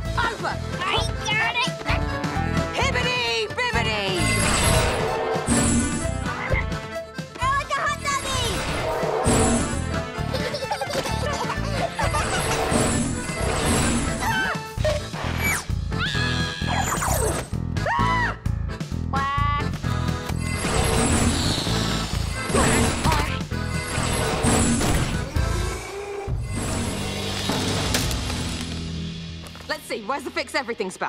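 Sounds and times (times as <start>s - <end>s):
cartoon music with bass line: 0.0s - 25.7s.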